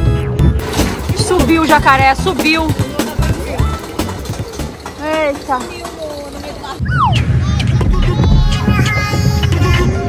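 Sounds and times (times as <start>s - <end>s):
low rumble of wind and ride: 0.9s - 10.0s.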